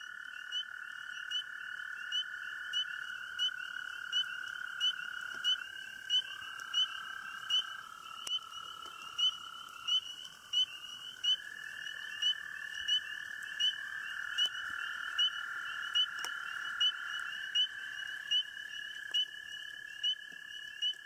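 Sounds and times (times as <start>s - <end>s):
frogs high peeps: 0.0s - 21.0s
frogs trilling: 0.0s - 21.0s.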